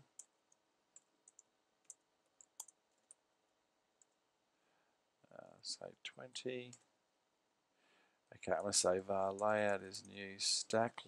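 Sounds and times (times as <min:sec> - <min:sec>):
keyboard typing clicks: 0:01.0 - 0:03.2.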